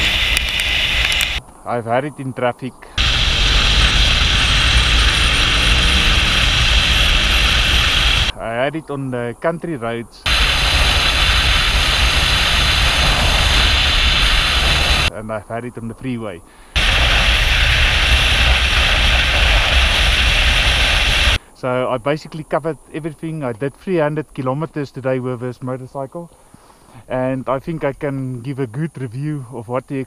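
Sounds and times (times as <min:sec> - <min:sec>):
wind rush on microphone: 0:00.0 - 0:01.4, 0:03.0 - 0:08.4, 0:10.2 - 0:15.1, 0:16.8 - 0:21.4
motorcycle engine rumble: 0:03.0 - 0:08.3, 0:10.3 - 0:15.1, 0:16.8 - 0:21.4.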